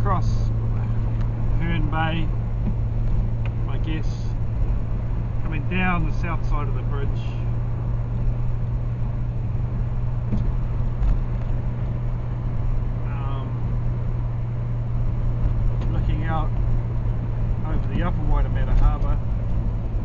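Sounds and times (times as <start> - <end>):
car interior road drone: 0.0 - 20.0.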